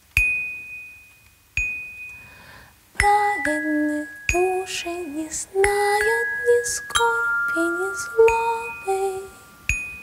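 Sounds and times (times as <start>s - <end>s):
slow sparse music: 0.0s - 10.0s.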